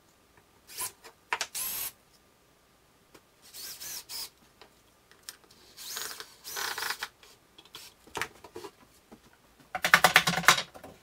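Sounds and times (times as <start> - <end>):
cordless drill driving screws: 3.5 - 4.3.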